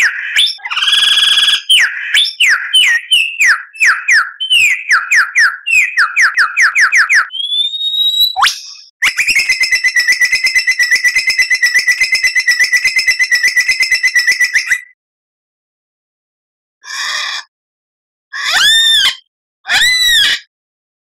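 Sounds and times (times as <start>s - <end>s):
lyrebird whistled song: 0.0s - 15.0s.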